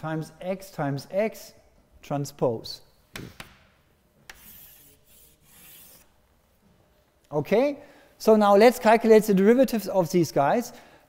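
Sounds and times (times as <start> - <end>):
chalk writing on blackboard: 4.3 - 6.1.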